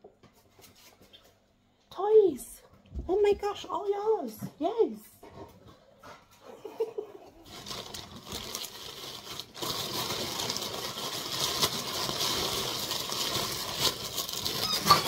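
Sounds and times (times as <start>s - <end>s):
plastic bag crinkling: 7.4s - 15.0s
sharp plastic crackles: 7.5s - 15.0s.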